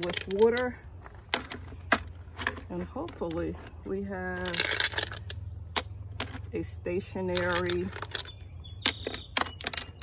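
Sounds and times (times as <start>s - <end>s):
stones clicking together: 0.0s - 6.5s, 7.3s - 10.0s.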